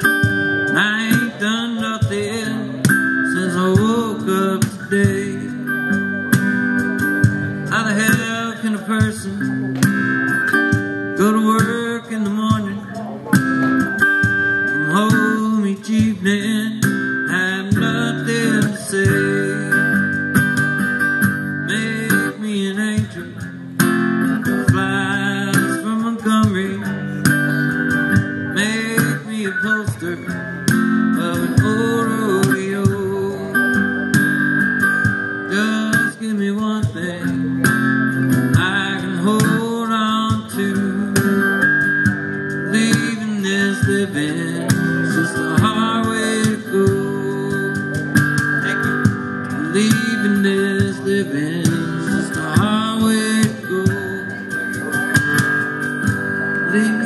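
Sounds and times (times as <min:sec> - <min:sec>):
acoustic guitar strumming: 0:00.0 - 0:57.0
cajon played with sticks: 0:00.0 - 0:57.0.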